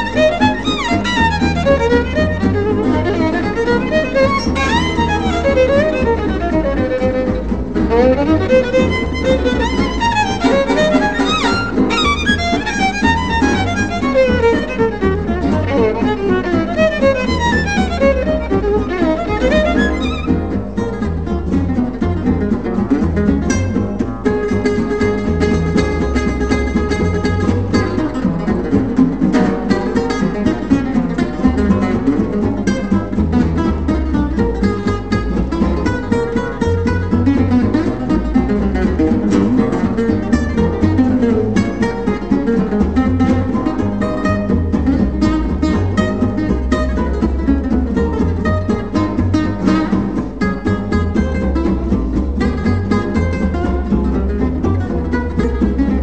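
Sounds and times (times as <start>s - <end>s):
double bass: 0.0s - 56.0s
lead acoustic guitar: 0.0s - 56.0s
rhythm guitar chords: 0.0s - 56.0s.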